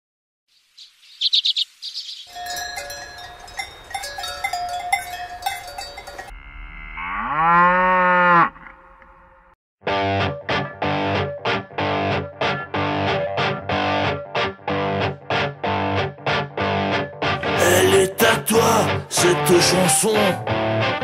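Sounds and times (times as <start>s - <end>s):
cowbells clanking: 2.3s - 6.4s
cow mooing: 5.0s - 9.5s.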